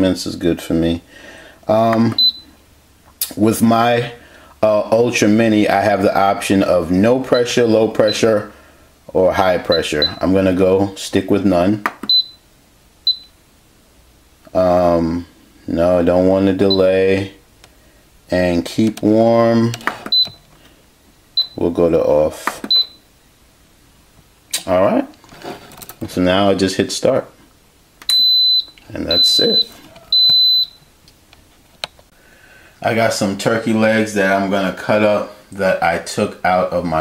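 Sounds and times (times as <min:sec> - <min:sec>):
short high-pitched beeps: 0:13.1 - 0:13.4, 0:28.1 - 0:30.8.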